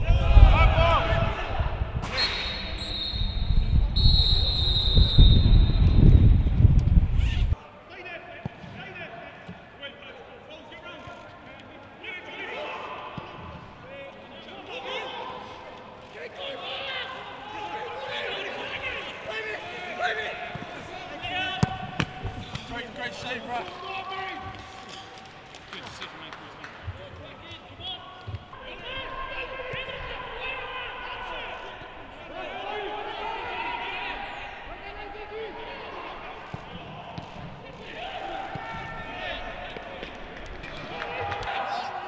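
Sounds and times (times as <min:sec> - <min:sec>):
players shouting: 0:16.3 - 0:24.7, 0:27.5 - 0:42.0.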